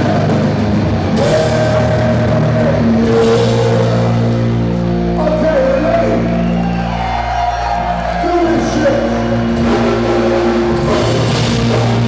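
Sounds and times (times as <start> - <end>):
punk band playing: 0.0 - 12.0.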